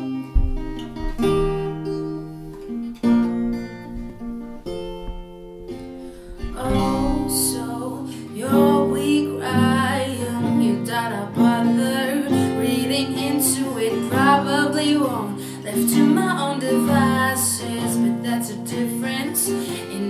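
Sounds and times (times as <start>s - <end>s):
acoustic guitars picking and strumming: 0.0s - 20.0s
woman singing: 6.2s - 20.0s.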